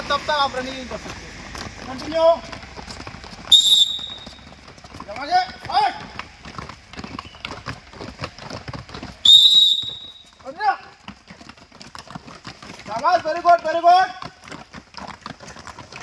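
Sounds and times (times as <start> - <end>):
whistle blast: 3.5 - 4.4, 9.2 - 10.4.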